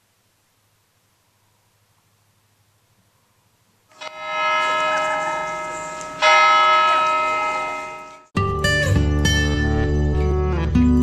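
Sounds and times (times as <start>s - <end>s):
large tower bell ringing: 3.9s - 8.3s.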